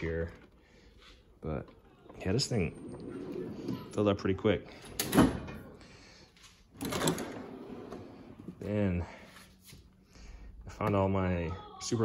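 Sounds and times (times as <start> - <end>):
drawer sliding on slides: 2.0 - 4.0, 6.8 - 8.6.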